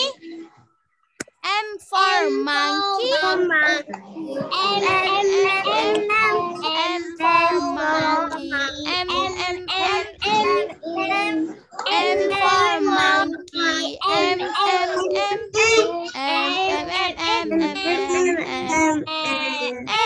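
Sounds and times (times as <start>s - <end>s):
children singing: 1.8s - 20.0s.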